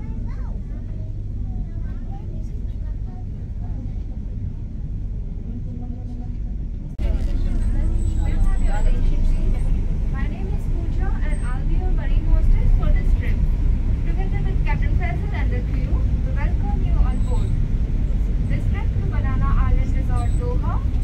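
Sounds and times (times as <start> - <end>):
ferry engines low rumble: 0.0 - 21.0
indistinct voices: 5.5 - 21.0.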